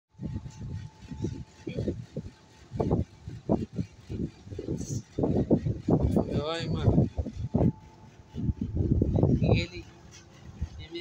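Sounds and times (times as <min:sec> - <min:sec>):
muffled voices talking: 0:06.1 - 0:07.2, 0:09.2 - 0:09.9.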